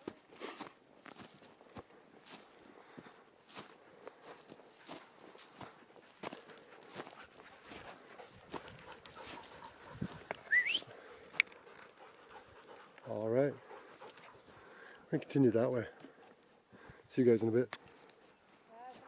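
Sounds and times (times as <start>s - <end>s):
footsteps crunching on dry twigs: 0.0s - 10.6s, 17.7s - 19.0s.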